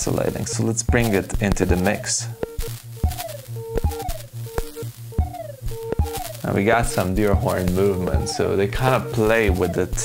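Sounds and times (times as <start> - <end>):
pulsing low tone: 0.0 - 10.0
short steady blips: 0.0 - 10.0
sharp clicky synth hits: 0.9 - 10.0.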